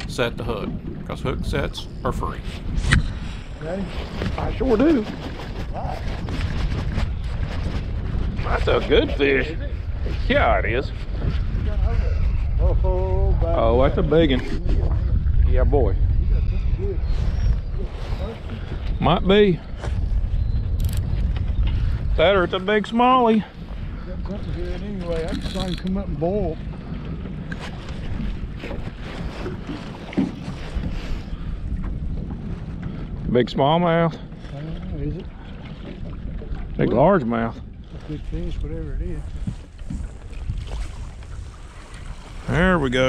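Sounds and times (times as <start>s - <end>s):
water slapping boat hull: 0.0s - 16.2s, 16.9s - 43.0s
wind buffeting microphone: 0.0s - 43.0s.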